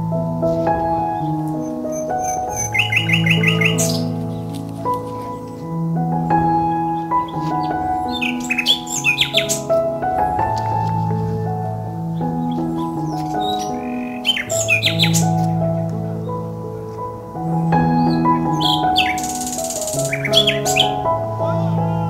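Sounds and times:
soft instrumental music: 0:00.0 - 0:22.0
birds chirping: 0:00.8 - 0:05.8, 0:06.4 - 0:22.0.

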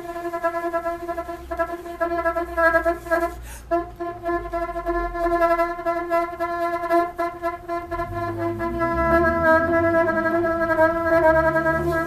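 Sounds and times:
bassoon holding long note: 0:00.0 - 0:12.0
low wavering sound: 0:07.5 - 0:12.0.

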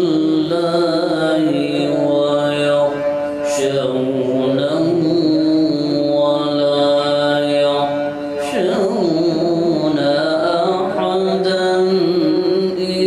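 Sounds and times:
man reciting melodically: 0:00.0 - 0:13.0.

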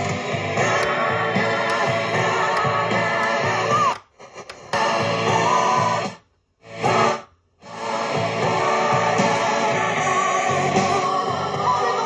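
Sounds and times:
music with singing from boombox: 0:00.0 - 0:12.0.

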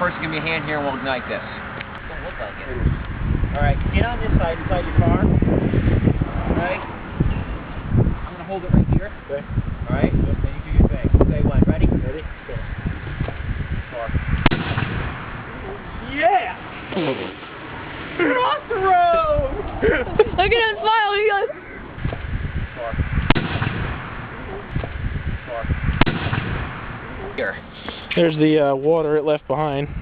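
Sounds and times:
gas explosion bang: 0:13.0 - 0:15.6, 0:22.0 - 0:27.1
sharp knock: 0:14.4 - 0:15.4, 0:23.3 - 0:24.2, 0:26.0 - 0:27.0.

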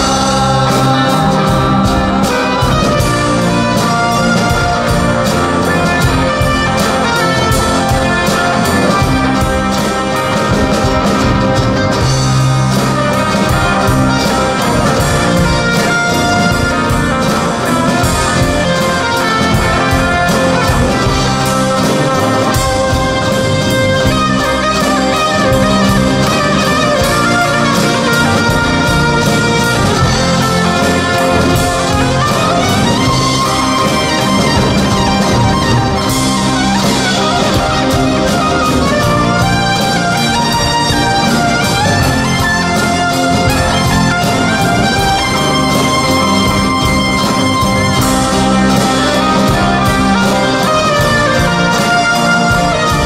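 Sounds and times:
drums: 0:00.0 - 0:53.0
electric bass: 0:00.0 - 0:53.0
guitars: 0:00.0 - 0:53.0
keyboard lead melody: 0:00.0 - 0:53.0
rock band playing: 0:00.0 - 0:53.0.

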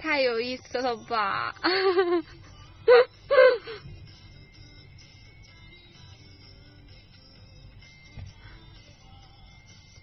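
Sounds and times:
woman laughing: 0:01.6 - 0:03.8.

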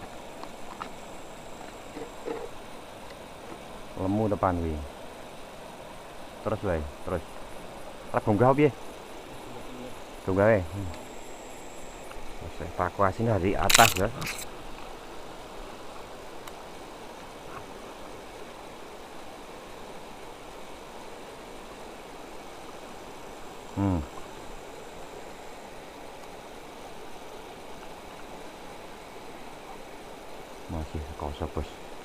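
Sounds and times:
river rushing over rocks: 0:14.5 - 0:32.0.

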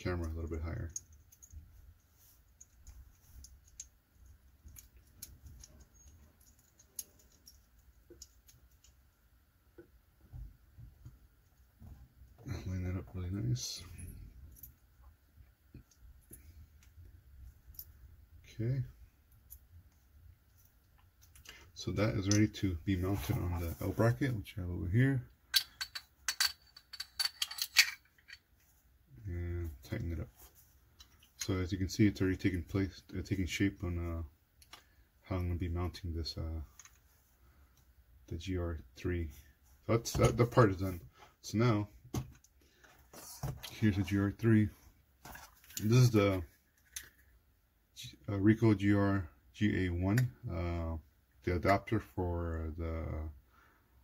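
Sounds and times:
metal hardware clicking: 0:25.5 - 0:28.4.

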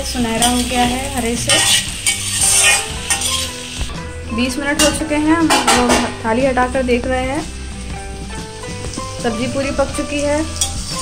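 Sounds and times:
frying sizzle: 0:00.0 - 0:11.0
metal spoon scraping a pan: 0:00.3 - 0:03.9, 0:04.7 - 0:06.2, 0:10.4 - 0:11.0.

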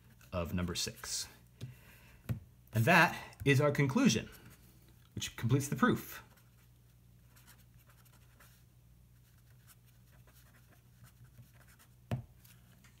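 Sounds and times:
pen scratching on paper: 0:09.2 - 0:12.6.

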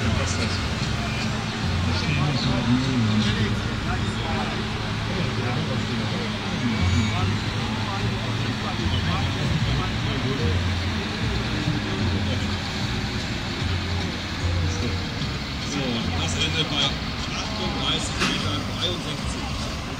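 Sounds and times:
crowd voices: 0:00.0 - 0:19.9
public address announcer: 0:00.0 - 0:19.9
tractor diesel engine under load: 0:00.0 - 0:19.9.

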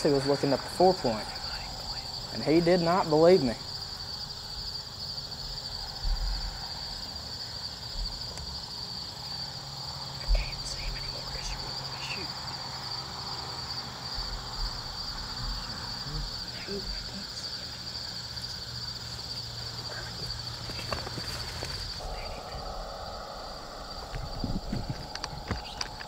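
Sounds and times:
insects chirping: 0:00.0 - 0:26.0
dull low thumps: 0:04.4 - 0:07.0, 0:07.9 - 0:08.2, 0:14.1 - 0:17.0, 0:22.0 - 0:26.0.

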